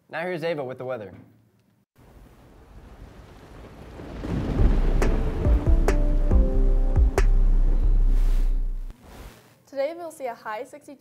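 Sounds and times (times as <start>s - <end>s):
rain: 2.0s - 8.9s
deep thunder rumbling: 2.4s - 8.9s
sharp thunder cracks: 2.5s - 8.8s.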